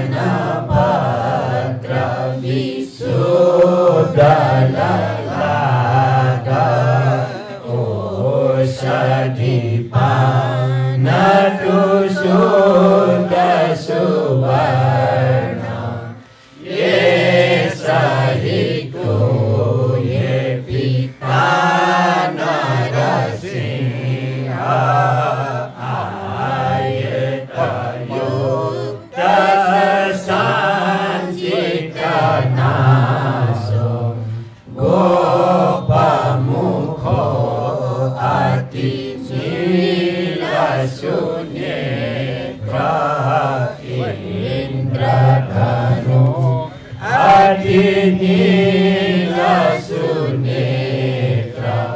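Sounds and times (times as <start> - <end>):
people chanting together: 0.0 - 51.9.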